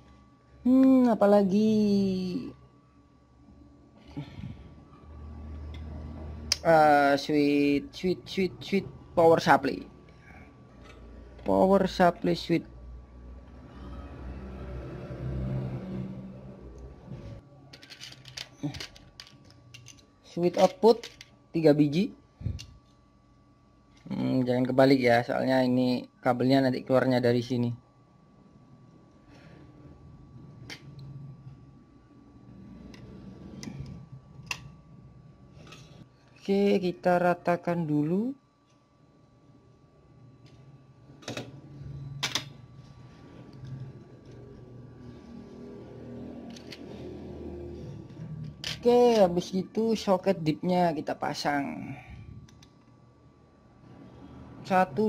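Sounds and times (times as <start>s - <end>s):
electronic parts clicking in tray: 17.7s - 21.4s.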